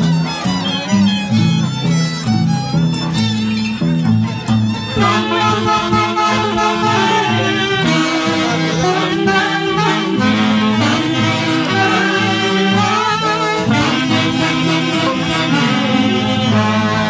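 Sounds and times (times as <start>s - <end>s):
saxophones playing amplified: 0.0s - 17.0s.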